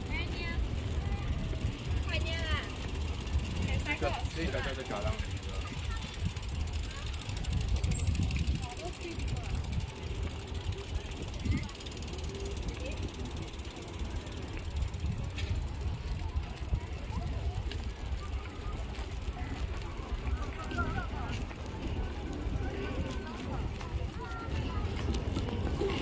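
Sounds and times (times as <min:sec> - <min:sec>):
faint voices: 0:00.0 - 0:26.0
wind buffeting microphone: 0:00.0 - 0:26.0
tyres rolling over paving: 0:08.4 - 0:26.0.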